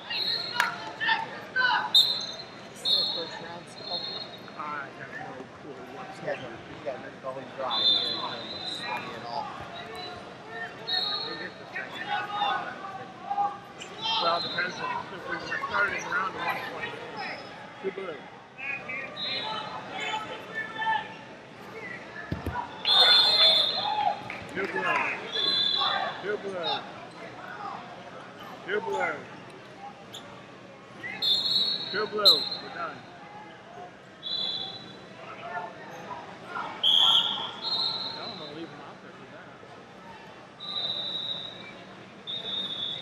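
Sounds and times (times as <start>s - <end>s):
crowd chatter: 0.0s - 43.0s
large hall background noise: 0.0s - 43.0s
people talking and calling out: 0.0s - 43.0s.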